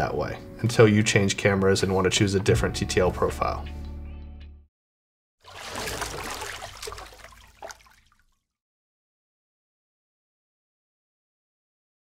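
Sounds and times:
watery splashing swoosh: 5.4s - 8.3s.

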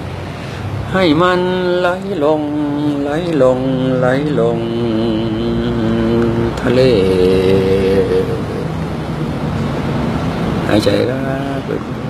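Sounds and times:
steady low hum: 0.0s - 12.0s
person chanting slowly: 0.8s - 8.9s, 10.6s - 12.0s.

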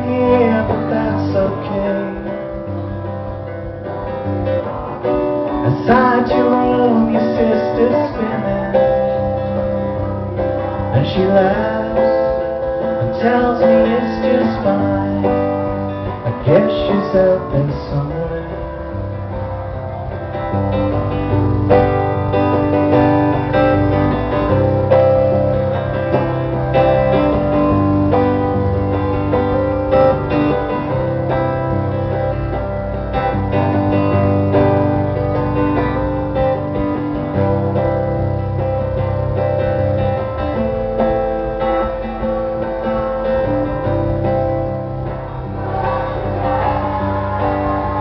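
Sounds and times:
amplified acoustic guitar: 0.0s - 48.0s.

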